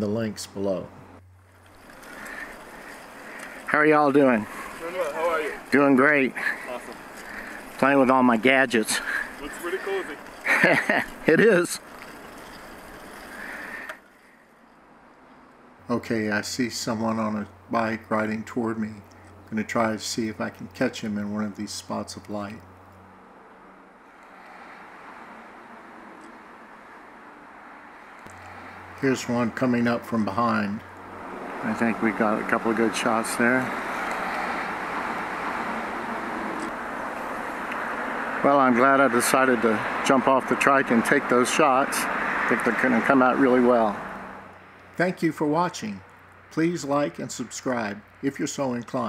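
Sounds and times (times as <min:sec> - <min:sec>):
steady outdoor rushing noise: 0:00.0 - 0:48.6
tyres rolling on asphalt: 0:00.0 - 0:49.0.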